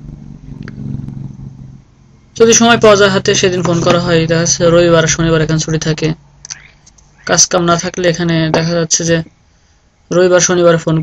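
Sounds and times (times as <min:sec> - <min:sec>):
low motor hum: 0:00.0 - 0:07.3.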